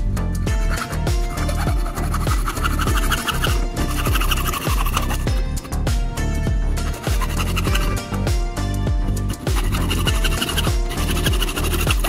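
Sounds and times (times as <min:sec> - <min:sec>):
music with steady beat: 0:00.0 - 0:12.0
hacksaw rasping through plastic: 0:00.7 - 0:05.8, 0:06.8 - 0:08.3, 0:09.3 - 0:12.0.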